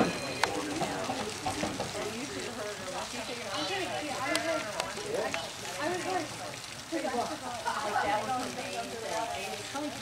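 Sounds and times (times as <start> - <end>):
crackling hiss: 0.0 - 10.0
indistinct chatter of voices: 0.0 - 10.0.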